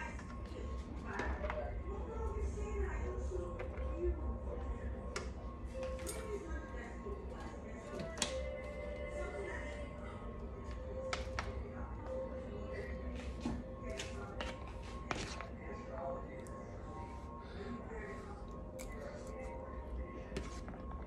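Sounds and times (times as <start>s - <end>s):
faint music with singing: 0.0s - 21.0s.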